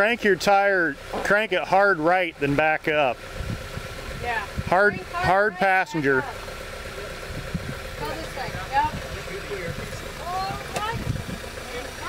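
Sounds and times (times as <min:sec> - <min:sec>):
car engine idling: 0:00.0 - 0:12.0
indistinct voices: 0:04.2 - 0:12.0.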